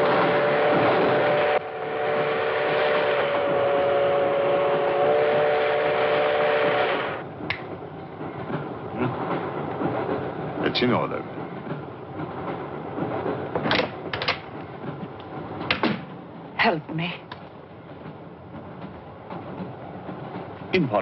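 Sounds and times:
passenger train clattering along track: 0.0s - 21.0s.

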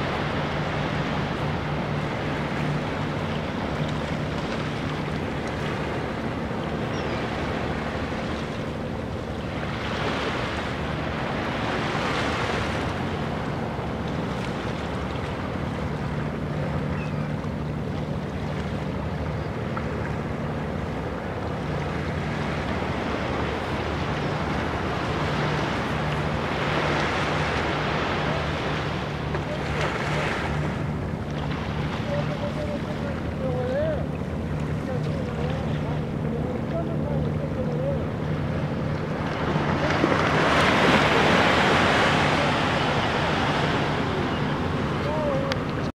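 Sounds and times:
small waves lapping on sand: 0.0s - 17.0s, 17.8s - 45.9s
steady low hum: 0.0s - 45.9s.

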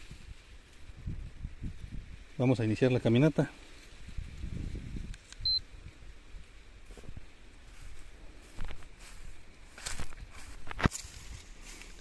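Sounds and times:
footsteps through dry grass: 0.0s - 12.0s
short high beep: 5.4s - 5.6s.

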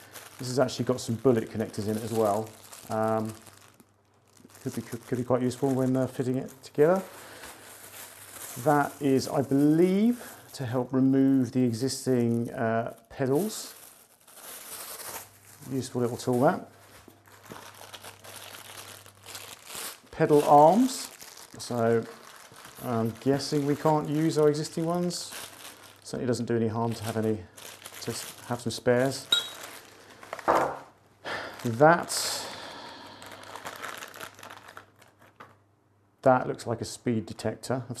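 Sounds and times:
plastic bags crinkling: 0.0s - 35.6s.

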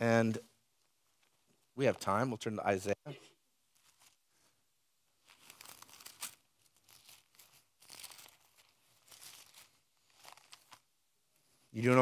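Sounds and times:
thin pages being turned: 5.2s - 10.9s.

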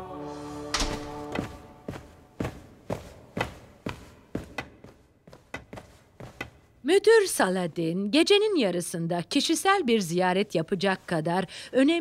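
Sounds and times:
cartoon footsteps echoing: 0.8s - 6.8s.

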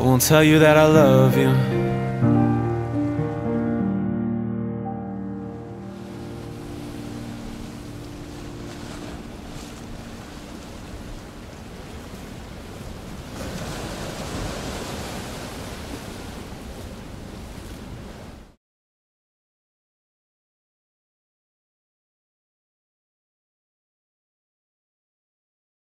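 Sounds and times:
music held notes: 0.0s - 10.6s.

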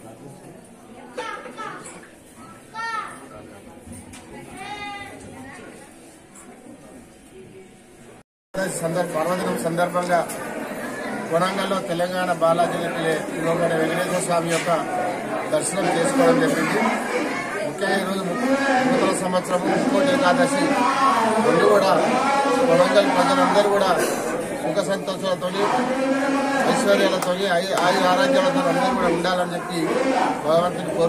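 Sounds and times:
low hubbub of voices: 0.0s - 31.0s
people chattering: 0.0s - 31.0s.

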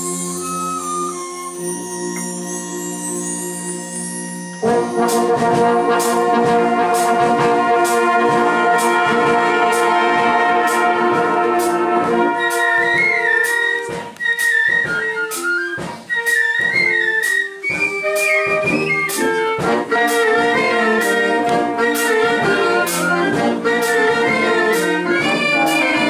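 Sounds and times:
high flute melody: 0.0s - 26.0s
bugles and trumpets playing: 4.6s - 26.0s
steady drum beat: 4.6s - 26.0s.

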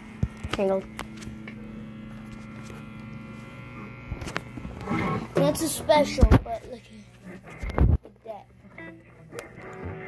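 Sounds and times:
guitar amplifier hum and buzz: 0.0s - 10.0s.

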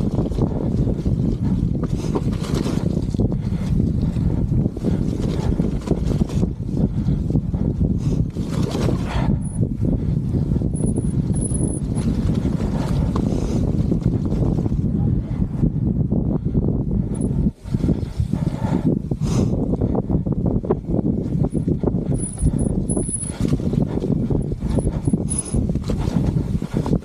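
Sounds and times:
mountain bike rumble and rattle: 0.0s - 27.0s
wind buffeting microphone: 0.0s - 27.0s.

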